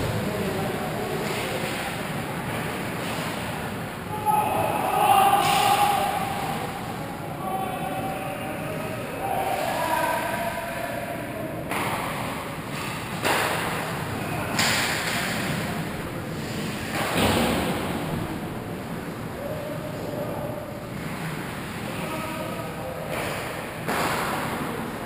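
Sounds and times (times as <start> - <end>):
players shouting: 4.1 - 11.6.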